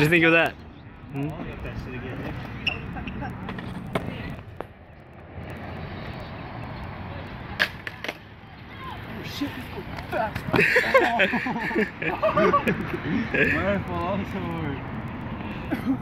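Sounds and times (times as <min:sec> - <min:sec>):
skateboard rolling on concrete: 0:00.0 - 0:16.0.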